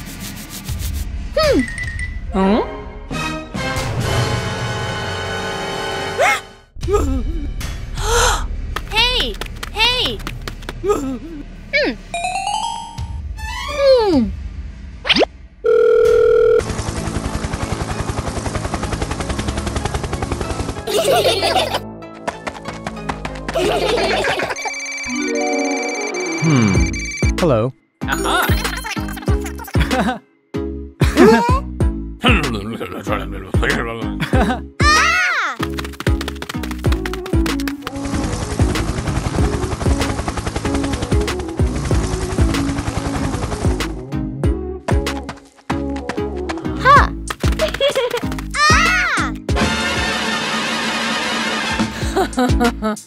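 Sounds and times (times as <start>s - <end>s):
cartoon scratching rub: 0.0s - 1.1s
cartoon background music: 11.8s - 14.3s, 20.6s - 21.8s, 23.5s - 53.0s
mobile phone ringtone: 15.7s - 16.6s, 24.4s - 27.4s
short falling vocal sound: 26.4s - 26.9s.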